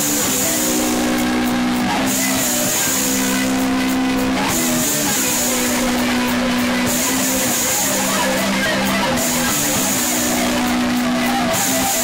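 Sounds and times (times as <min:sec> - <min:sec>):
distorted electric guitars: 0:00.0 - 0:12.0
drums with cymbals: 0:00.0 - 0:12.0.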